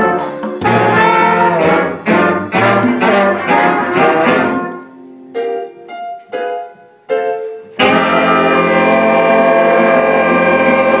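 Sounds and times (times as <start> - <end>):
saxophones and trumpets holding chord: 0.0 - 5.2, 7.8 - 11.0.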